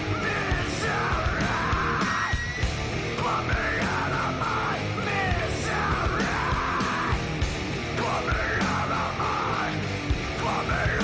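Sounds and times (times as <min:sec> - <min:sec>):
distorted electric guitar: 0:00.0 - 0:11.0
drums: 0:00.0 - 0:11.0
screamed rock vocals: 0:00.0 - 0:11.0.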